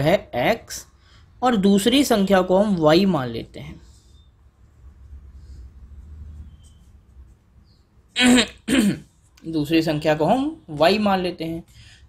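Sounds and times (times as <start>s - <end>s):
man clearing throat: 8.2s - 9.1s.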